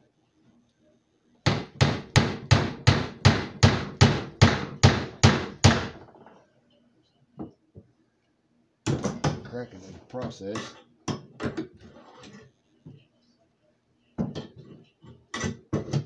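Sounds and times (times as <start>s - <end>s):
hammer striking nail into wood: 1.5s - 6.0s.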